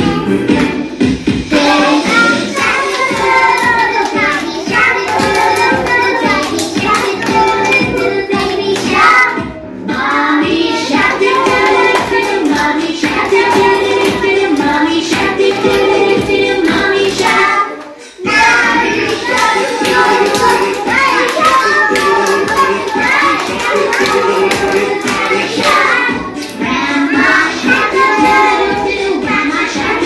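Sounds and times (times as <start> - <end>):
children singing: 1.5 - 30.0
backing track with steady beat: 18.2 - 30.0.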